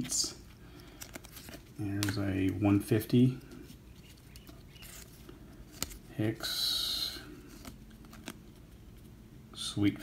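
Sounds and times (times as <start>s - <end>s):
trading cards rustling: 0.4s - 6.1s, 7.3s - 9.2s.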